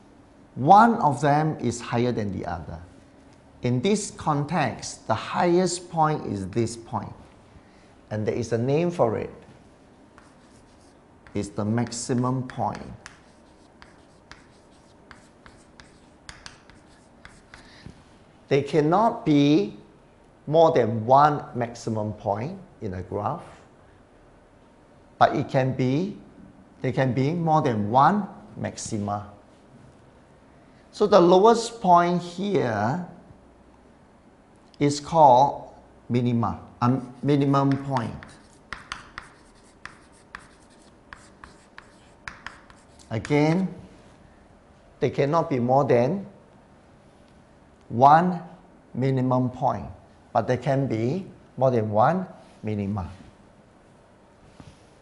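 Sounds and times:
chalk scratching on chalkboard: 10.2s - 17.8s, 37.0s - 43.4s
chalk tapping on board: 10.2s - 17.9s, 37.6s - 43.4s.

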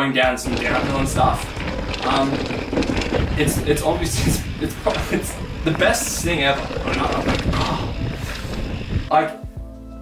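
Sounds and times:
bike rattling: 0.2s - 9.1s
tyres rumbling on dirt trail: 0.2s - 9.1s.

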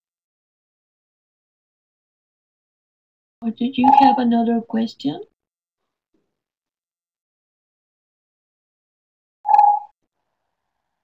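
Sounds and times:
short electronic beep: 3.8s - 4.2s, 9.5s - 9.9s.

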